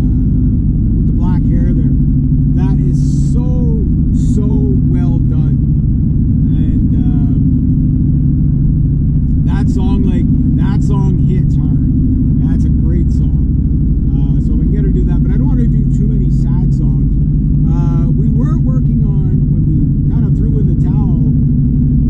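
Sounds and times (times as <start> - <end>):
car engine and road drone: 0.0 - 22.0
man talking: 1.1 - 2.0, 2.6 - 5.6, 6.5 - 7.6, 9.4 - 13.5, 14.1 - 21.4.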